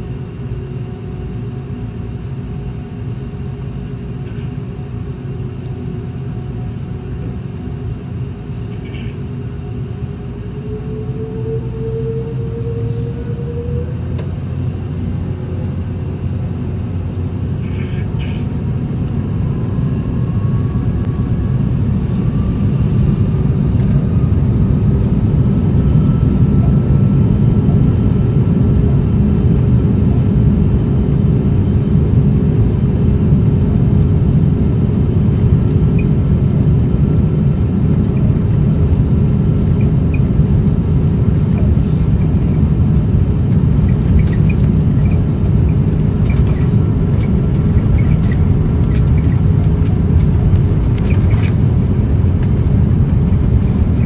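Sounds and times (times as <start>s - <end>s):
jet engines spooling up: 7.8s - 31.8s.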